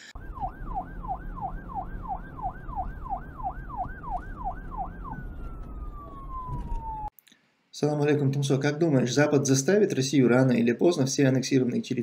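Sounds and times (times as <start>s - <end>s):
siren yelping: 0.0s - 7.1s.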